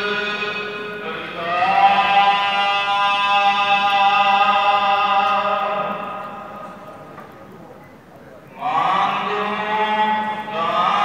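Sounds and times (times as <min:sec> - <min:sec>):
person singing long notes: 0:08.5 - 0:11.0.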